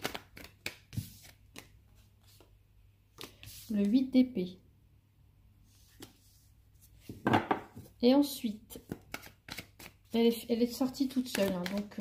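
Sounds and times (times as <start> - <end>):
cards knocking and rustling: 0.0 - 2.4, 8.8 - 10.1, 10.8 - 12.0.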